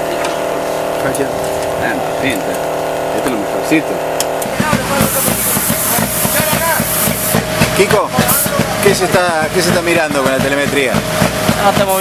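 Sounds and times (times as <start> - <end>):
car engine idling: 0.0 - 12.0
voices: 0.0 - 12.0
loud hiss: 4.4 - 12.0.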